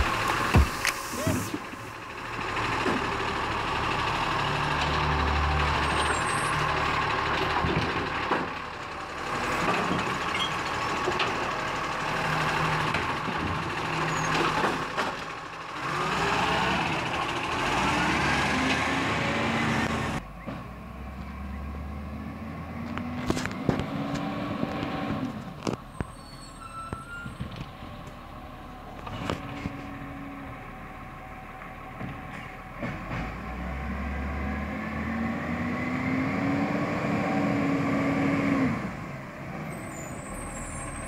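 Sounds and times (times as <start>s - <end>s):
garbage truck engine revving: 0.0s - 25.6s, 32.7s - 41.0s.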